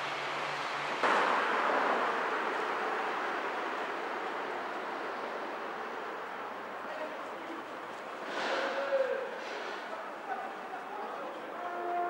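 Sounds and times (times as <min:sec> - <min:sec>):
passing vehicles rushing: 0:00.0 - 0:11.6.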